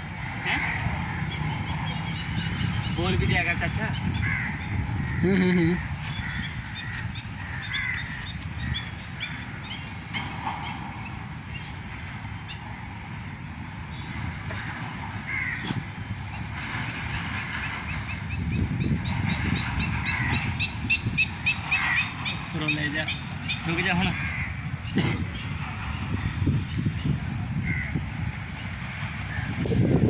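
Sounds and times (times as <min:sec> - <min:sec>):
birds calling: 0:00.0 - 0:30.0
wind rumble on microphone: 0:00.0 - 0:30.0
crows cawing: 0:00.4 - 0:02.7, 0:04.0 - 0:10.8, 0:14.5 - 0:15.9, 0:20.0 - 0:24.9, 0:27.6 - 0:28.0.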